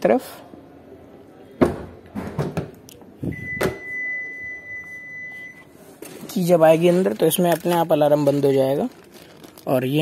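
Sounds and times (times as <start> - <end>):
car alarm beep: 3.3 - 5.7.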